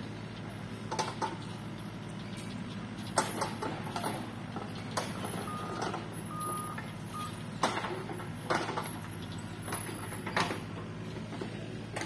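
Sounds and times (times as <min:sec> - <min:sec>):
heavy vehicle engine running: 0:00.0 - 0:12.0
warning alarm beeps: 0:03.9 - 0:07.6.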